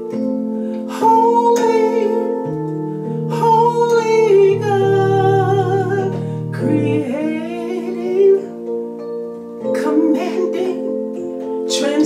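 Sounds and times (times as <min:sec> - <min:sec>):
sustained instrumental chords: 0:00.0 - 0:12.0
person singing long held notes: 0:00.5 - 0:08.8, 0:09.6 - 0:12.0.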